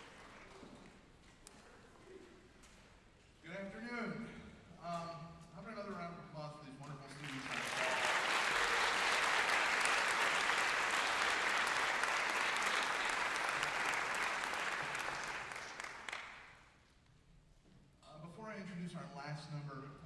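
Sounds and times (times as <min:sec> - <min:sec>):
audience applauding: 0:00.0 - 0:00.6, 0:07.2 - 0:16.6.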